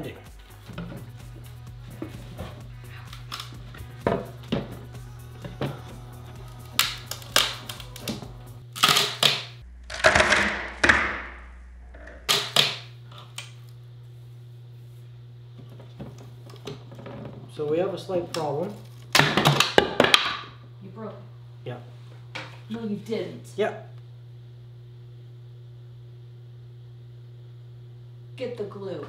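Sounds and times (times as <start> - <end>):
background music with bass line: 0.0 - 8.7
wood cracking: 5.4 - 11.3.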